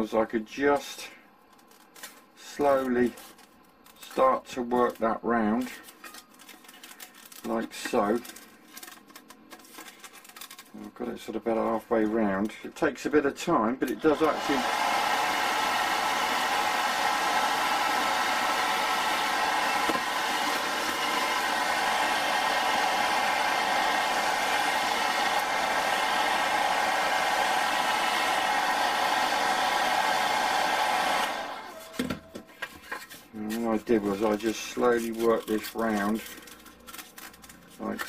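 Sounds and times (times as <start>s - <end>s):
hairdryer running: 13.9s - 32.4s.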